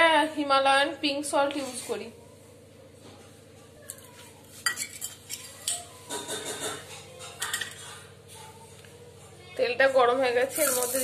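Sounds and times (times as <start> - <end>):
faint background hum: 0.0 - 11.0
steel kitchenware clinking: 4.6 - 8.1.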